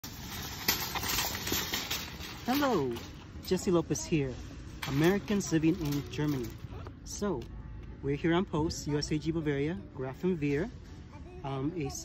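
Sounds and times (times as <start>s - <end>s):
shopping cart rolling on pavement: 0.0s - 7.2s.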